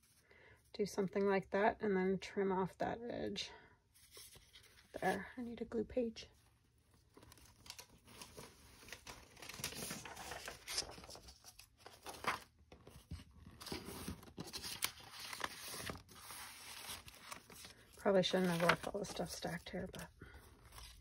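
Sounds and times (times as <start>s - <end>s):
paper rustling and crinkling: 4.0s - 5.3s, 6.4s - 21.0s.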